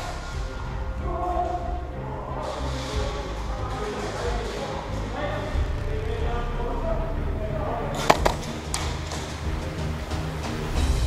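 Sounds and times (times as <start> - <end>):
background music with bass: 0.0 - 11.0.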